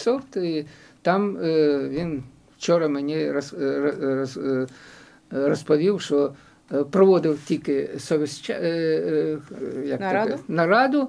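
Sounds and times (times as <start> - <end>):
man speaking: 0.0 - 4.7, 5.3 - 11.0.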